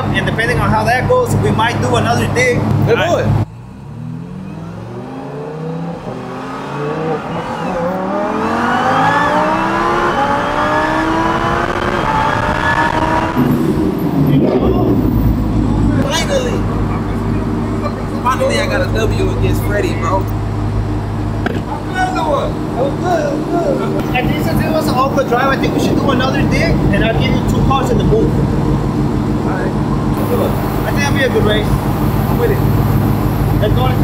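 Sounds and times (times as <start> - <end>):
engine idling: 0.0 - 3.8, 13.6 - 34.0
cars accelerating hard: 0.0 - 34.0.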